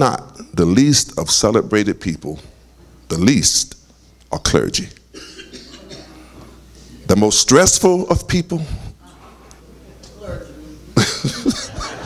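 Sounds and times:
man coughing into microphone: 5.1 - 6.4.

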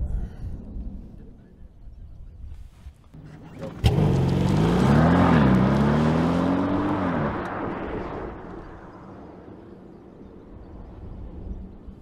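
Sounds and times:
tyre noise: 3.2 - 7.4
car engine accelerating: 3.2 - 9.4.

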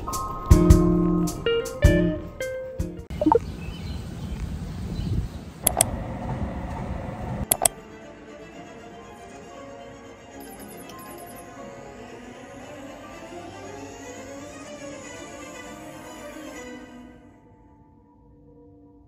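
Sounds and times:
sharp clicks: 5.6 - 5.9, 7.5 - 7.8.

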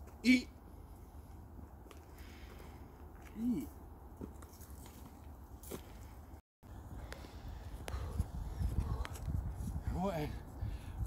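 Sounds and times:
wind rumbling on microphone: 6.7 - 11.0.

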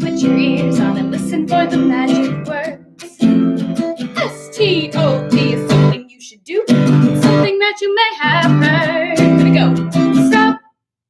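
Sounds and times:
acoustic guitar strumming: 0.0 - 6.0, 6.7 - 10.7
woman singing: 0.0 - 10.7.

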